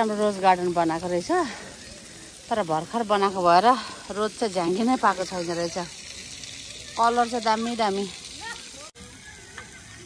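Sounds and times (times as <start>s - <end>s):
faint distant voices: 0.0s - 10.0s
outdoor background hiss: 0.0s - 10.0s.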